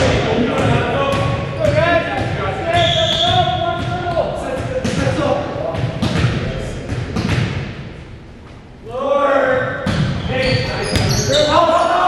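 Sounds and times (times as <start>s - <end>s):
gymnasium voices and din: 0.0s - 12.0s.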